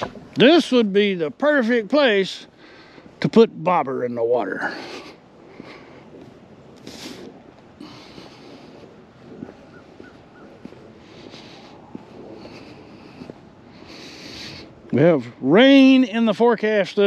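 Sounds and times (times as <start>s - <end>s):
wind blowing over microphone: 4.7s - 16.0s.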